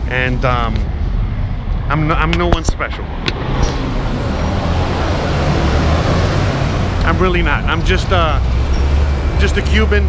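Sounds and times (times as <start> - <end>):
vehicle passing close by: 3.0 - 10.0.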